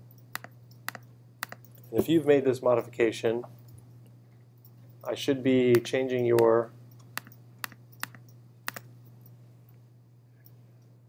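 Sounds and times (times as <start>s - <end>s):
steady low hum: 0.0s - 11.0s
computer key clicks: 0.2s - 1.9s, 5.8s - 8.9s.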